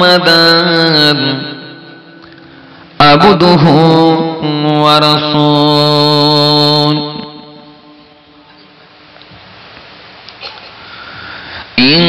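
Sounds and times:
man chanting over loudspeaker: 0:00.0 - 0:02.2, 0:02.9 - 0:08.4, 0:11.8 - 0:12.0
faint sound system hiss: 0:00.0 - 0:12.0.

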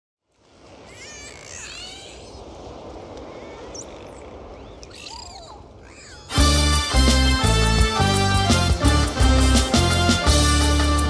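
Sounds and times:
sea surf washing onto beach: 0:00.2 - 0:11.0
gulls crying: 0:00.6 - 0:11.0.

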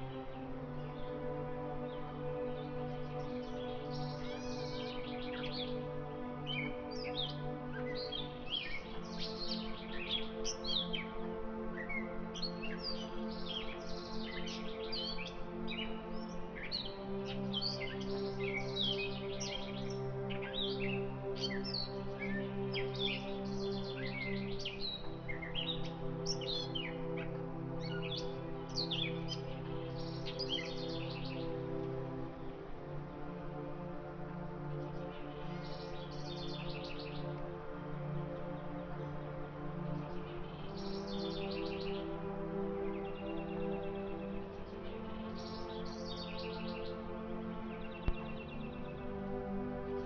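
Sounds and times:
birds chirping: 0:00.0 - 0:50.0
slow ambient music: 0:00.0 - 0:50.0.

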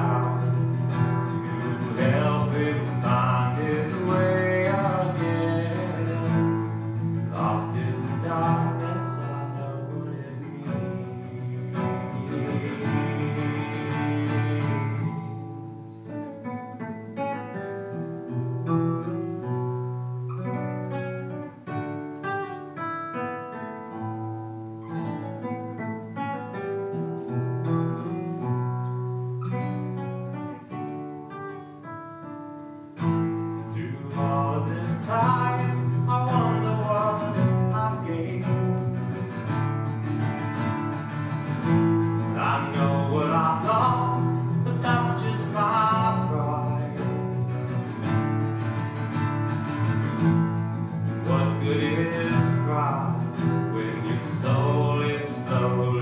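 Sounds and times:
man singing: 0:00.0 - 0:16.2, 0:33.6 - 0:39.4, 0:41.6 - 0:47.7, 0:51.0 - 0:56.0
fingerpicked acoustic guitar: 0:00.0 - 0:56.0.

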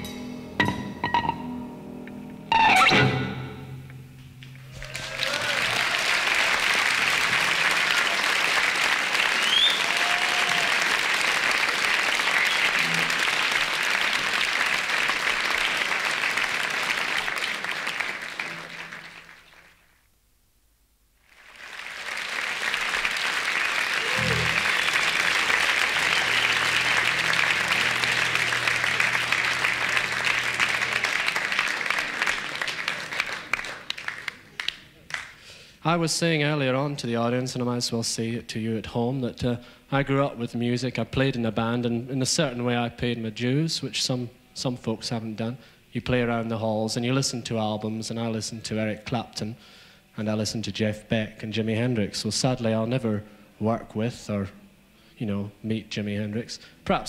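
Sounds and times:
audience applauding: 0:04.6 - 0:20.0, 0:21.2 - 0:35.5.

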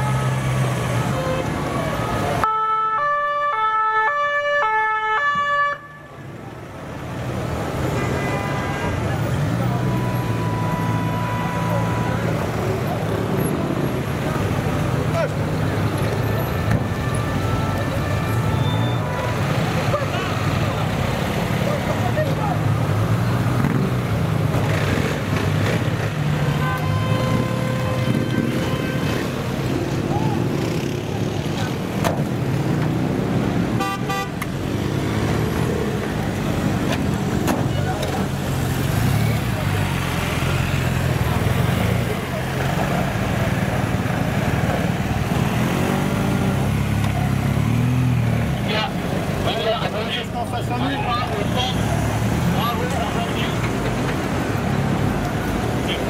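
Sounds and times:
motorcycle and van engines rumbling: 0:00.0 - 0:56.0
voices: 0:07.4 - 0:24.8, 0:35.6 - 0:56.0.

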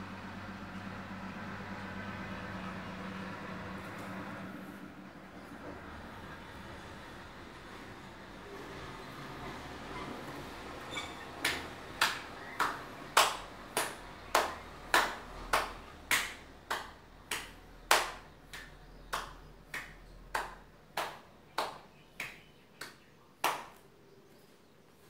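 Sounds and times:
hand claps in steady rhythm: 0:11.4 - 0:23.9.

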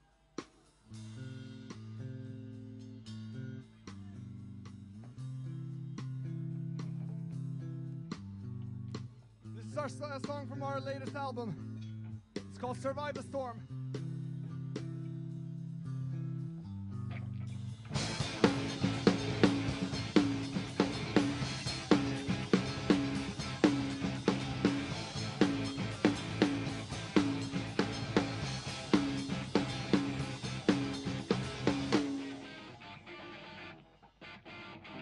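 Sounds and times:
guitar and bass sustained notes: 0:01.0 - 0:35.0
punk rock band playing: 0:09.0 - 0:11.6, 0:17.1 - 0:35.0.

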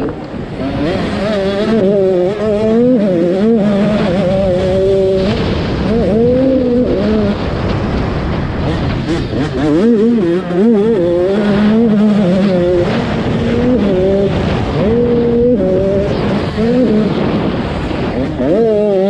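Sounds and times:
motocross bike engine revving: 0:00.0 - 0:19.0.

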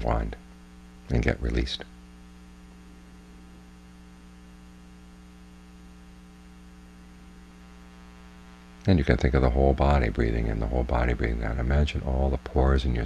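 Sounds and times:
faint electrical mains hum: 0:00.0 - 0:13.0.

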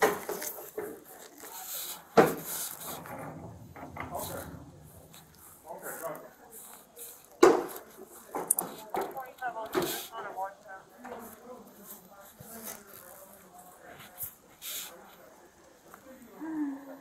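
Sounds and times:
fabric rubbing on camera: 0:00.0 - 0:03.3, 0:11.2 - 0:15.4.

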